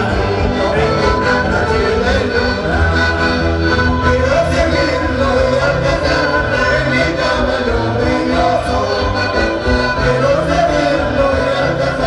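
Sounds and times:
group of voices singing: 0.0s - 12.0s
held instrument tones: 0.0s - 12.0s.

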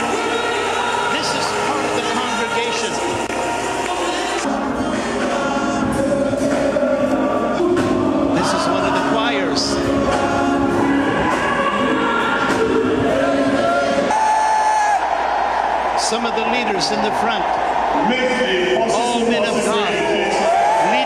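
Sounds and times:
choir singing gospel: 0.0s - 21.0s.

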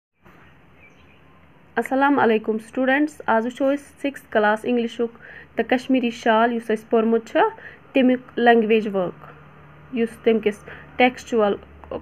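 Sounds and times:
faint background hiss: 0.3s - 12.0s
person speaking: 1.8s - 9.4s.

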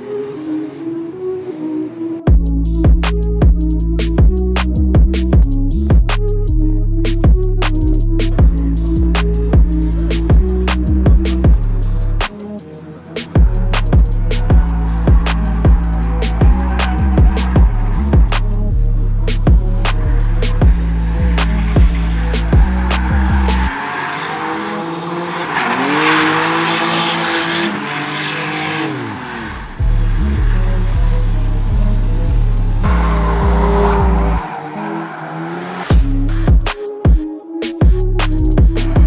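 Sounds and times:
car engine revving: 0.0s - 36.7s, 37.9s - 39.0s
music with deep beat: 2.3s - 23.7s, 35.9s - 39.0s
tyre squeal: 13.4s - 18.4s, 19.9s - 24.6s.

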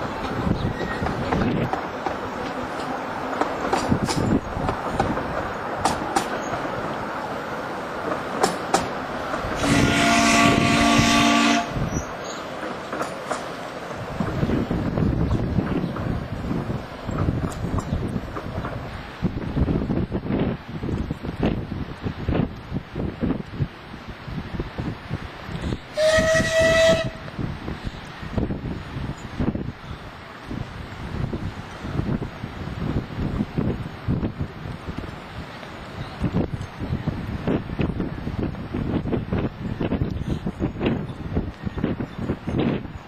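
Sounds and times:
steam whistle: 9.6s - 11.8s, 25.9s - 27.2s.

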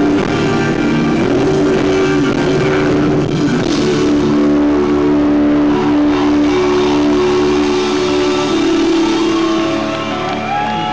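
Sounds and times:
guitars sustaining a chord: 0.0s - 10.9s.

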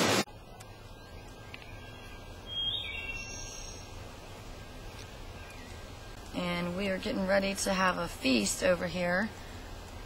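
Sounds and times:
low outdoor rumble: 0.3s - 10.0s
bird whistling song: 1.0s - 3.9s.

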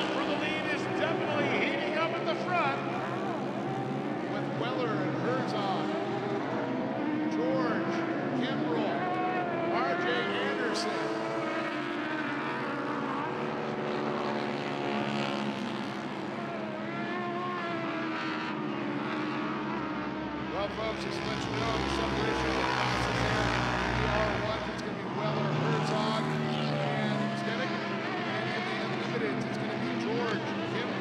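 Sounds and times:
racing engines revving: 0.0s - 31.0s.

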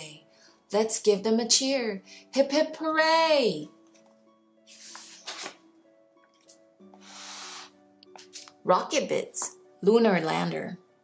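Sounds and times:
soft background music: 0.0s - 11.0s
paper page turning: 4.7s - 5.7s.

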